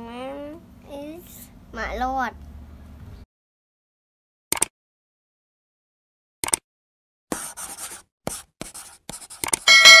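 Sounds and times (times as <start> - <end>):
pencil scribbling: 7.3 - 9.7
bright ringing chime: 9.7 - 10.0.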